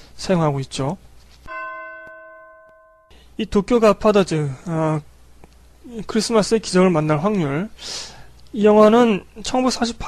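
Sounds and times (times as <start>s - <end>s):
bell strike ringing: 1.5s - 3.1s.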